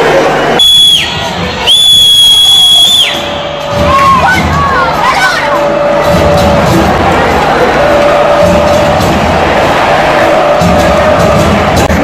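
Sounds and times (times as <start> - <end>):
stadium crowd: 0.0 - 12.0
referee's whistle blasts: 0.6 - 3.6.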